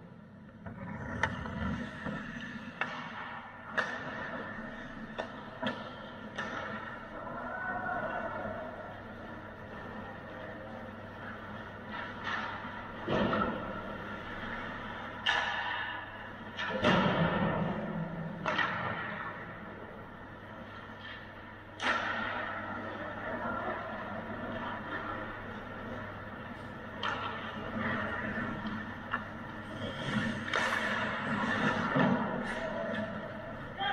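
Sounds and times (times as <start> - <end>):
hockey sticks and puck hitting boards: 0.6 - 7.4, 11.7 - 19.7, 20.9 - 23.0, 24.4 - 33.8.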